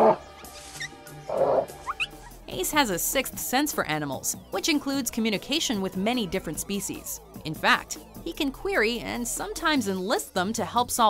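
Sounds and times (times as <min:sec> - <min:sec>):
soft film music: 0:00.0 - 0:11.0.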